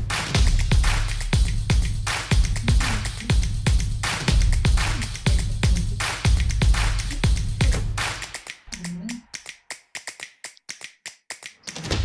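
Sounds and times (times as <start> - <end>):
electronic beat: 0.0 - 11.8.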